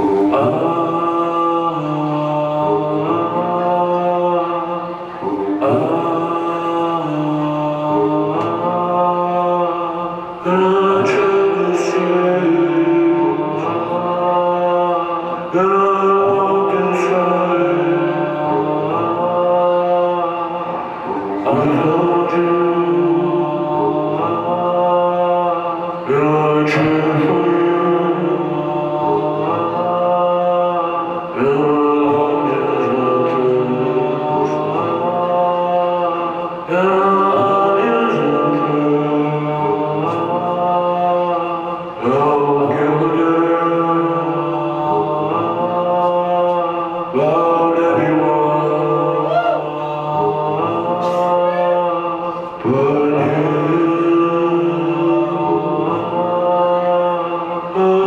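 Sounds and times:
chant-like vocal through microphone: 0.0s - 58.0s.

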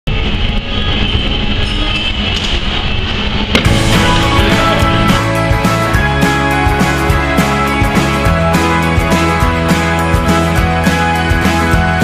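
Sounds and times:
rock music: 3.6s - 12.0s.

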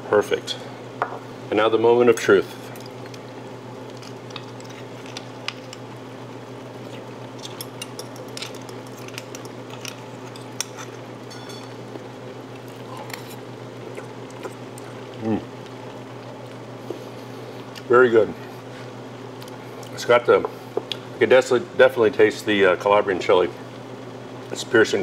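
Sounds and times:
steady low hum: 0.0s - 25.0s
fork clinking on ceramic bowl: 10.4s - 11.8s
person humming mm: 15.2s - 15.5s.

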